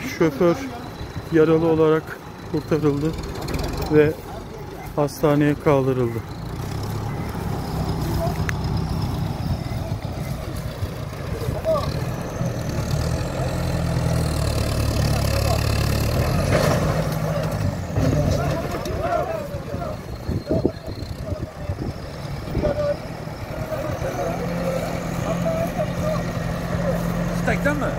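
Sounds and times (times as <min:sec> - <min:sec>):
tractor diesel engine running: 0:00.0 - 0:27.9.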